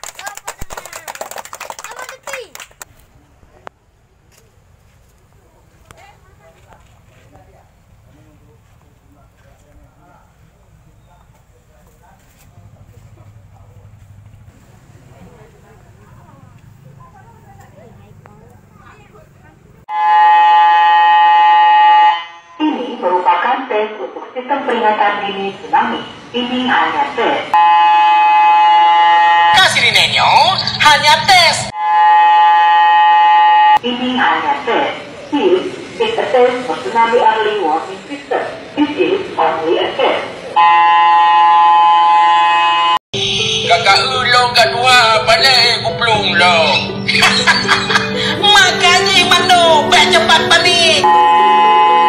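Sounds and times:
voices: 0:00.1 - 0:19.9, 0:22.6 - 0:27.6, 0:29.6 - 0:31.7, 0:33.8 - 0:40.6, 0:43.2 - 0:52.0
loud electronic buzzer tone: 0:27.6 - 0:29.8, 0:31.8 - 0:33.8, 0:40.6 - 0:44.4, 0:51.0 - 0:52.0
electronic alarm buzzer tone: 0:40.6 - 0:43.9, 0:51.0 - 0:52.0
music with singing: 0:43.2 - 0:51.8.

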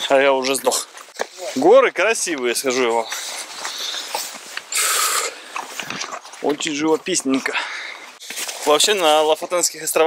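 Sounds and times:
man breathing hard: 0:03.0 - 0:05.6, 0:07.5 - 0:08.2.

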